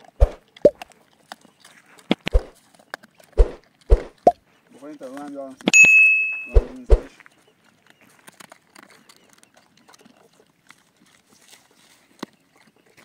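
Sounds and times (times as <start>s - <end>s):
dogs crunching and chewing: 0.0s - 5.8s, 7.1s - 13.0s
metallic ring: 5.8s - 6.7s.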